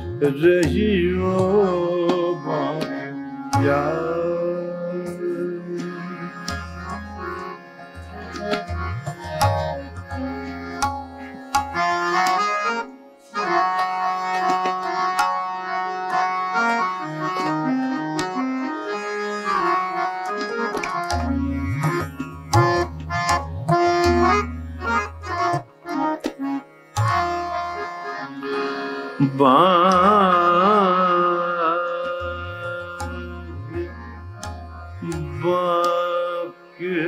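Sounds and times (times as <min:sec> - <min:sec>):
tabla playing: 0:00.0 - 0:12.5, 0:13.6 - 0:16.6, 0:19.4 - 0:28.0, 0:29.3 - 0:36.2
harmonium melody: 0:00.0 - 0:37.0.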